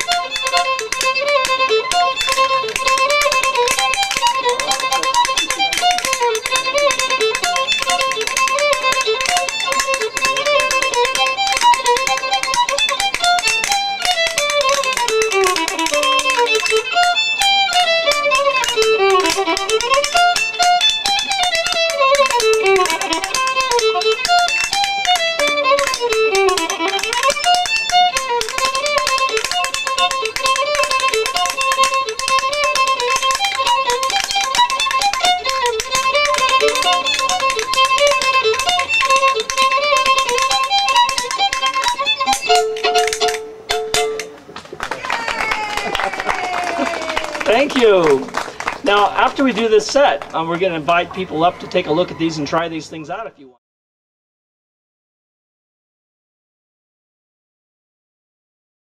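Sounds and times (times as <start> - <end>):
wooden spoons clacking: 0.0 - 44.8
fiddle playing a fast reel: 0.0 - 53.5.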